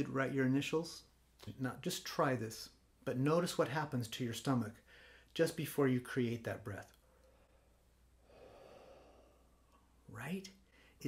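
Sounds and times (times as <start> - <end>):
man exhaling slowly: 7.3 - 9.7.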